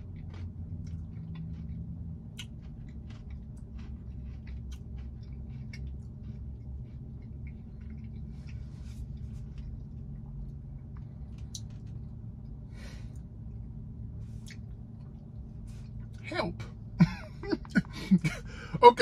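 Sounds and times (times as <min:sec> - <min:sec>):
wet chewing mouth clicks: 0:00.0 - 0:08.6
steady low hum: 0:00.0 - 0:19.0.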